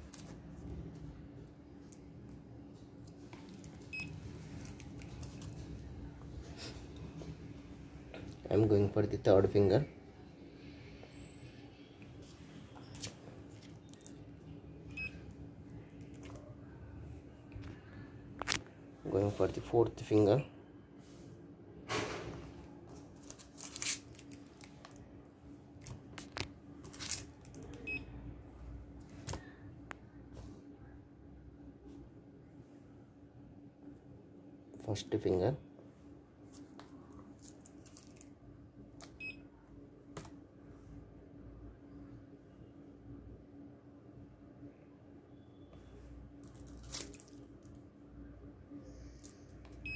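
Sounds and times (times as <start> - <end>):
low electrical hum: 0.0 - 49.9.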